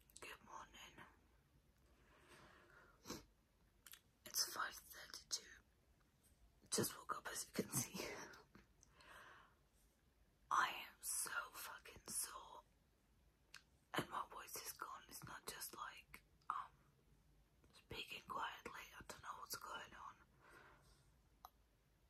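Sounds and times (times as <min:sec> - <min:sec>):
woman whispering: 0:00.0 - 0:01.2, 0:04.3 - 0:05.6, 0:06.7 - 0:08.5, 0:10.5 - 0:12.7, 0:14.0 - 0:16.9, 0:17.7 - 0:20.3.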